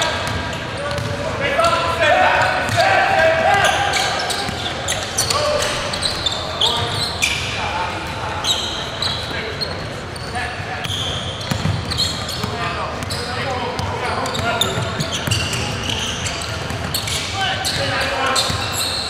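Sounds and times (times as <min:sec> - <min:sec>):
players calling out: 0:00.0 - 0:19.0.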